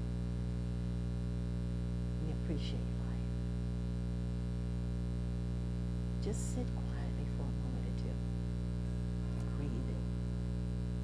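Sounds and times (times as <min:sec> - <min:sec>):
electrical mains hum: 0:00.0 - 0:11.0
person speaking a word: 0:09.4 - 0:10.1.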